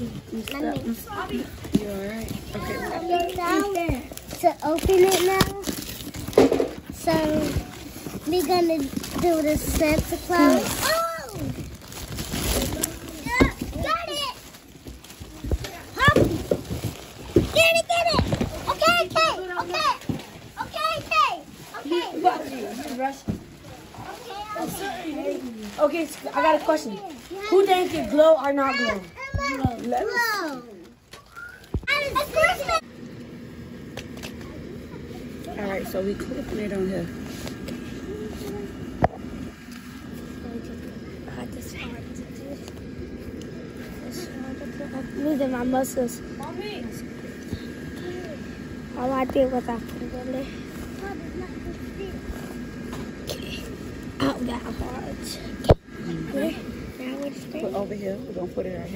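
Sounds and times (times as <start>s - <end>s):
plastic packaging crinkling: 0.0s - 18.9s
steady low hum: 0.0s - 58.9s
children calling: 2.4s - 36.7s.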